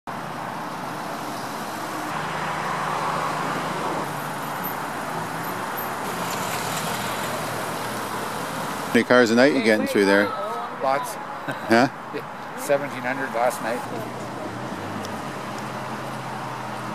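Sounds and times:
slow cars passing: 0.1 - 16.9.

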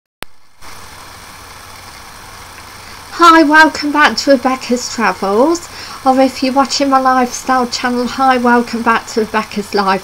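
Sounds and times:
low hum: 0.2 - 10.0
even hiss: 0.3 - 10.0.

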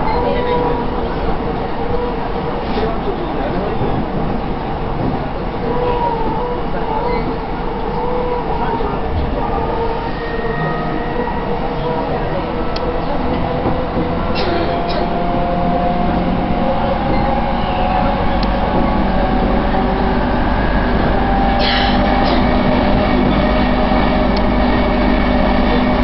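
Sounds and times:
train wheels rumbling on rail: 0.0 - 26.0.

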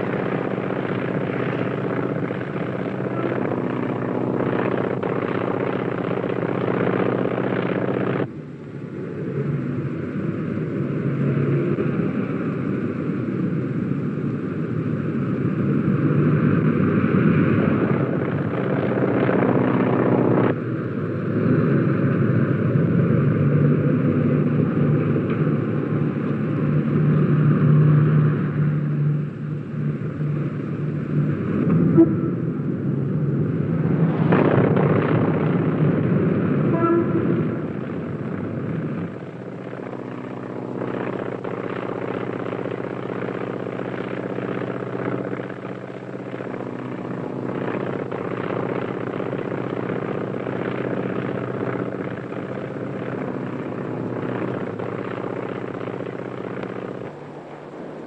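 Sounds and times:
propeller aircraft engines: 0.0 - 58.0.

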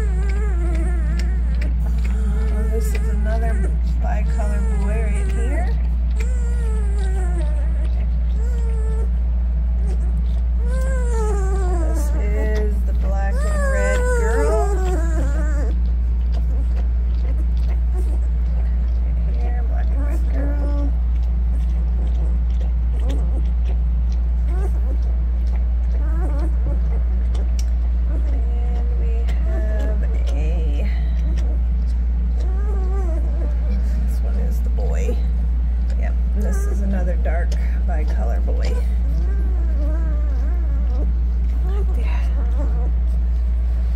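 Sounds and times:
puppies whining and squealing: 0.0 - 43.9
steady low hum: 0.0 - 43.9.

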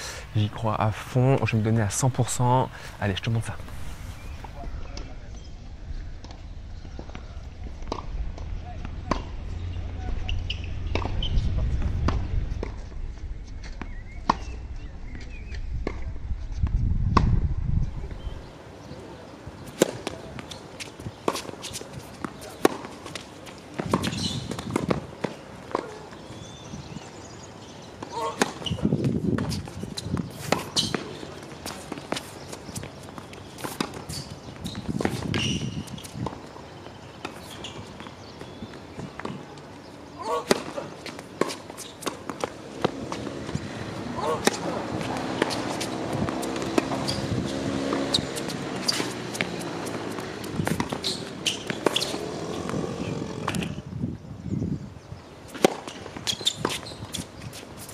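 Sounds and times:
tennis balls struck with racquets: 7.8 - 11.3, 19.6 - 53.8, 55.5 - 57.9
low rumble: 8.0 - 18.4
balls bouncing on hard court: 10.0 - 12.9, 19.7 - 26.9, 28.0 - 39.6, 40.2 - 53.8, 55.5 - 57.9.

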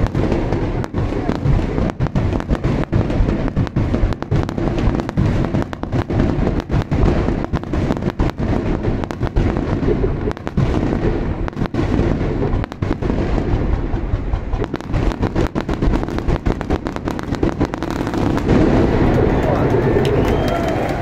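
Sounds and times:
fireworks bursting: 0.0 - 21.0.

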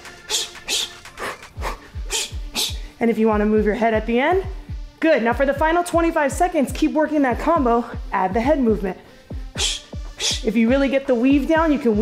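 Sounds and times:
background music with bass beat: 0.0 - 12.0
sharp breathy exhales: 0.2 - 3.0, 9.2 - 10.5.

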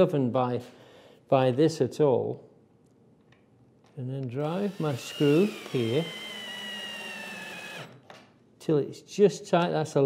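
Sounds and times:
drill driving screw into wood: 4.4 - 8.2.

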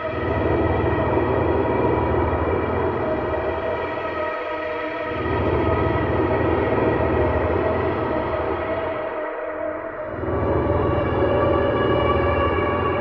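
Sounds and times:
dark ambient synthesizer drone: 0.0 - 13.0.

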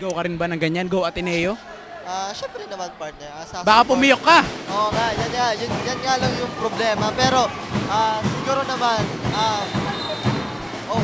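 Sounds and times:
basketball court noise: 3.7 - 11.0
referee's whistle: 9.3 - 10.7.

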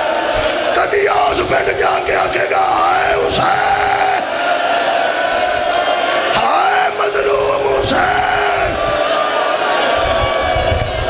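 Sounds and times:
mourning congregation crying: 0.0 - 11.0
man wailing through a pa system: 0.8 - 4.2, 6.4 - 8.8.

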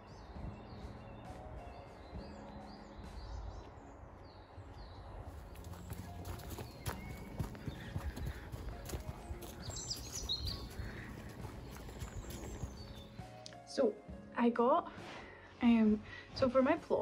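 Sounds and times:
bird chirps: 0.0 - 13.3
footsteps crunching on leaves: 5.3 - 13.2.

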